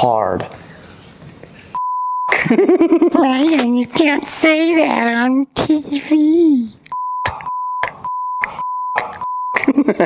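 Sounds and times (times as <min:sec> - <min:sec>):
censor bleep: 0:01.8 - 0:02.4, 0:06.9 - 0:09.7
people laughing: 0:02.3 - 0:03.2, 0:09.6 - 0:10.0.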